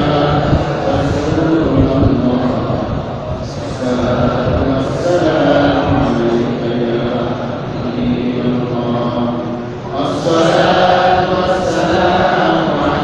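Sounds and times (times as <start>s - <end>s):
man chanting: 0.0s - 13.0s.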